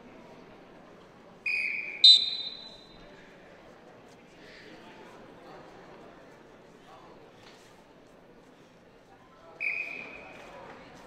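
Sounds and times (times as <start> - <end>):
arena crowd noise: 0.0 - 11.0
referee's whistle blast: 1.5 - 2.9.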